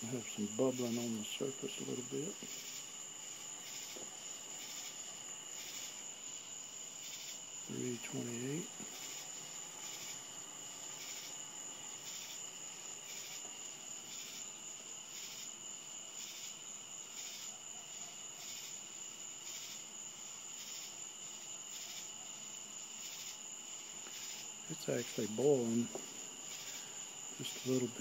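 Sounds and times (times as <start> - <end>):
night insects chirping: 0.0 - 28.0.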